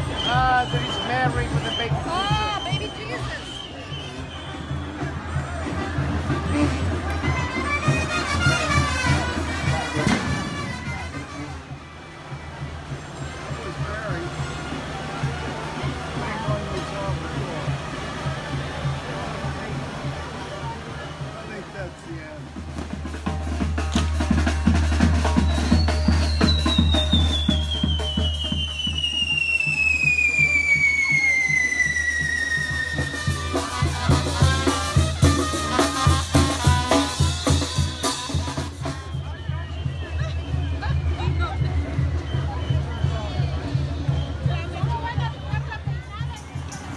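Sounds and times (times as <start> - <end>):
descending whistle: 0.0 - 5.1, 25.3 - 33.4
crowd: 0.0 - 46.9
procession music with drums: 0.0 - 46.9
fireworks crackling: 25.4 - 36.1.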